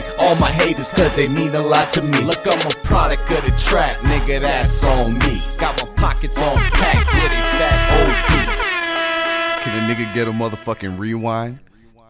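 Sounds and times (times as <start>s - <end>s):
hip-hop beat: 0.0s - 11.2s
track rewind: 5.6s - 11.5s
air horn sliding down in pitch: 6.6s - 11.1s.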